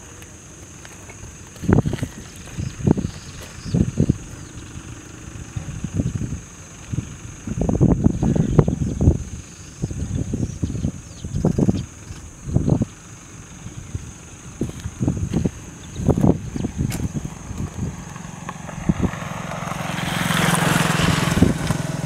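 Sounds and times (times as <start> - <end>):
wind buffeting microphone: 1.2 - 22.0.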